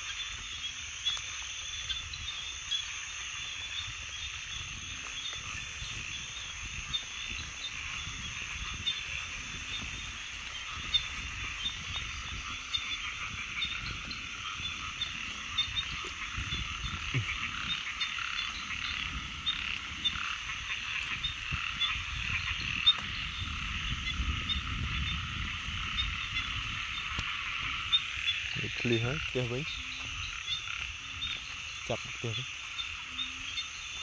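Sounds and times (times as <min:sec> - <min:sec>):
chorus of frogs calling: 0:00.0 - 0:34.0.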